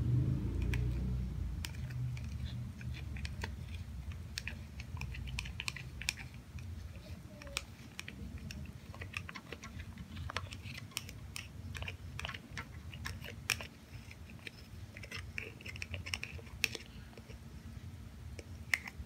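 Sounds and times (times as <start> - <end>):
steady low hum: 0.0 - 19.0
utensil scraping plastic cup: 1.6 - 17.4.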